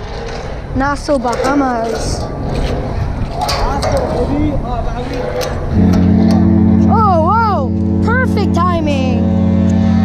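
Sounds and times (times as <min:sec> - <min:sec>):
steady low rumble: 0:00.0 - 0:10.0
voices: 0:00.7 - 0:09.4
deep ship's horn: 0:05.4 - 0:10.0.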